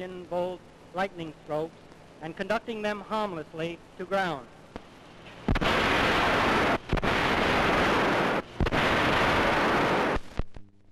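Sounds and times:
loud rushing noise: 0:05.5 - 0:10.2.

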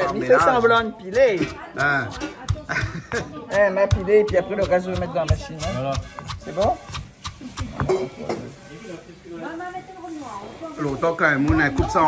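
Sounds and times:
stone pestle striking mortar: 0:00.0 - 0:08.1, 0:11.4 - 0:12.0.

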